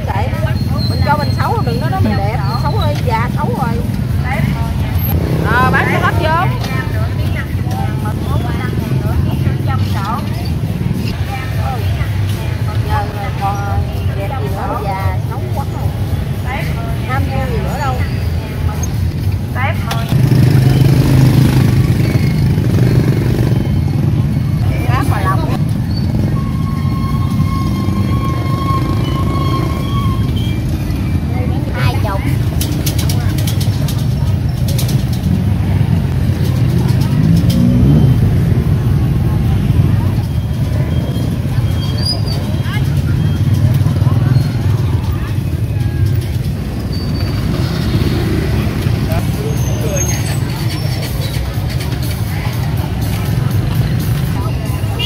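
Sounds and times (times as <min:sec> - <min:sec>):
motorbike engines running: 0:00.0 - 0:55.0
people's voices: 0:00.0 - 0:55.0
traffic rumble: 0:00.0 - 0:55.0.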